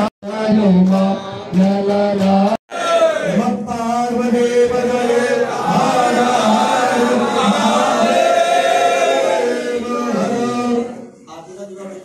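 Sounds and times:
group of voices chanting: 0:02.7 - 0:03.5, 0:04.4 - 0:11.1.

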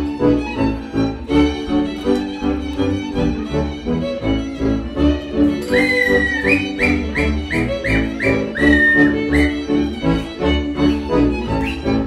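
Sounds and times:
fiddle melody: 0:00.0 - 0:12.0.

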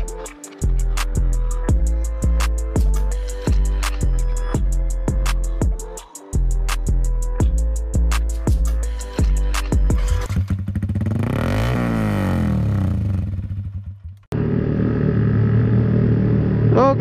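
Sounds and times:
intro music beats: 0:00.0 - 0:10.3
motorcycle engine running: 0:09.9 - 0:17.0.

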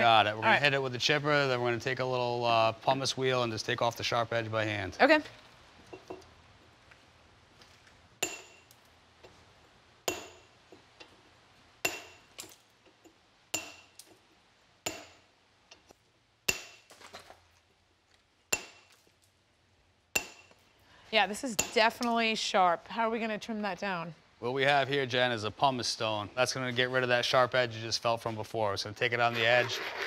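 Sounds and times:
hammer striking stone chisel: 0:08.2 - 0:08.7, 0:10.1 - 0:10.5, 0:11.8 - 0:12.3, 0:13.6 - 0:14.0, 0:14.9 - 0:15.2, 0:16.5 - 0:16.9, 0:18.5 - 0:18.9, 0:20.2 - 0:20.6.

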